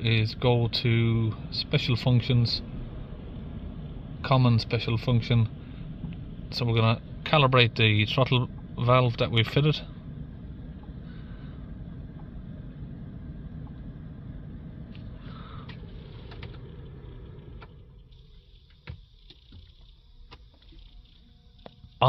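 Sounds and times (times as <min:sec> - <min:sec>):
car engine low rumble: 0:00.0 - 0:22.0.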